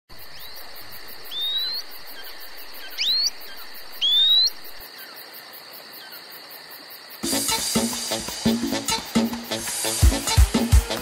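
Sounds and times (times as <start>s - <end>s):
insects buzzing: 0.1s - 11.0s
insect pulsing trill: 0.2s - 5.2s
bird whistling call: 1.3s - 1.9s, 2.9s - 3.4s, 4.0s - 4.6s.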